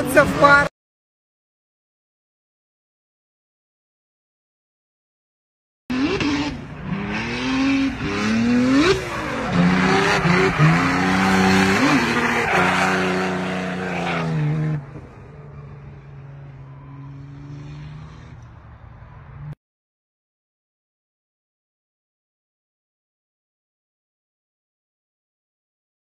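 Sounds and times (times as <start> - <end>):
car engine revving: 5.9 - 19.6.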